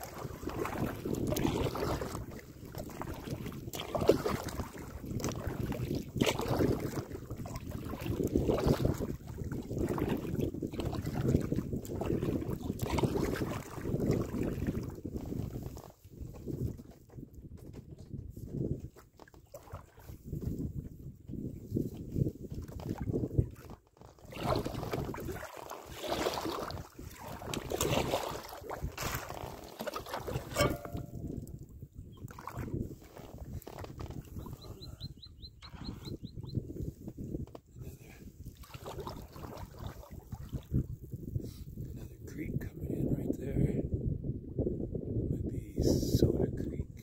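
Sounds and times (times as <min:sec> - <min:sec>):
water sloshing against boat: 0:00.0 - 0:36.2, 0:36.8 - 0:41.2
wind rumble on microphone: 0:00.0 - 0:47.0.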